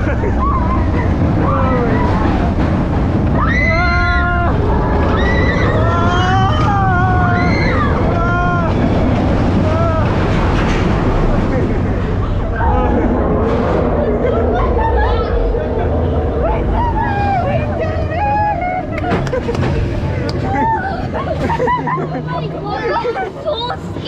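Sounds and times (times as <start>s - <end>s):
roller coaster rumbling on track: 0.0s - 24.0s
riders shouting and screaming: 0.1s - 10.5s.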